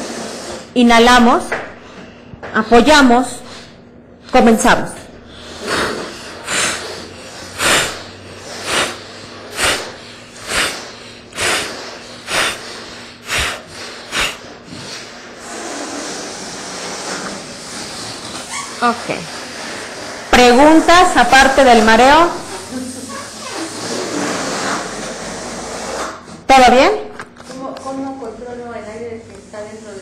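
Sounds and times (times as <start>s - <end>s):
person blowing up a balloon: 0.0s - 0.8s, 5.2s - 21.0s, 22.4s - 26.4s
air hissing: 5.2s - 21.0s.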